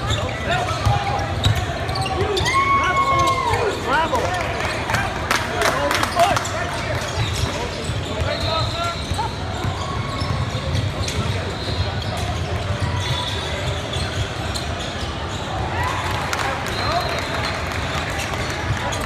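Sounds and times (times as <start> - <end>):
sneakers squeaking: 0.0 - 4.9, 5.8 - 19.0.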